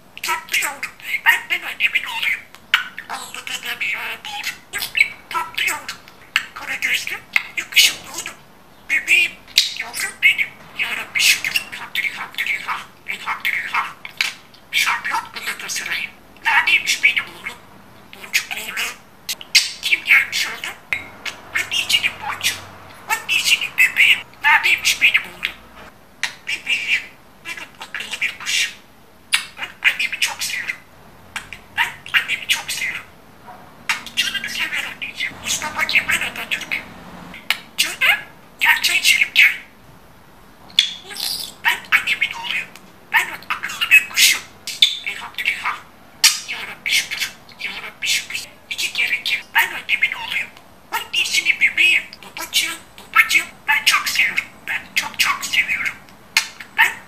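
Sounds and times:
budgerigar chattering: 0.2s - 30.8s, 31.4s - 33.1s, 33.9s - 39.7s, 40.7s - 57.0s.

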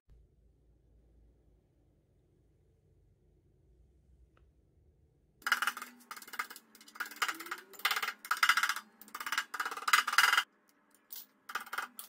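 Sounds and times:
scraping knocks: 5.4s - 10.4s.

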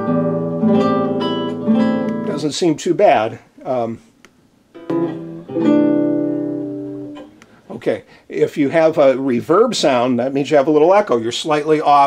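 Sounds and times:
acoustic guitar chords: 0.0s - 3.2s, 4.7s - 7.6s.

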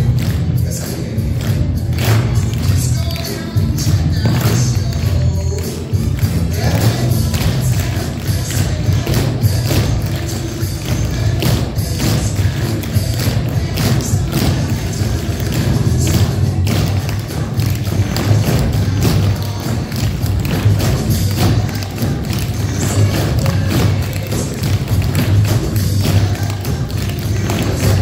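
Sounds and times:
music with steady beat: 0.0s - 28.0s
tap shoes on wooden floor: 6.7s - 28.0s.

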